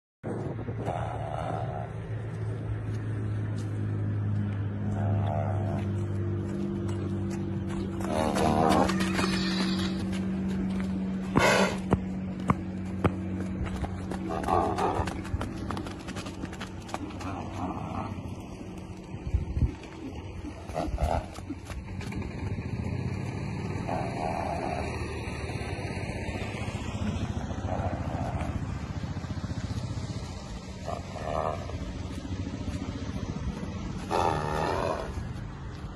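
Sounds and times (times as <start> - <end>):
low motor rumble: 0.2 - 35.9
steady low hum: 0.3 - 35.9
horse whinnying: 8.1 - 10.1.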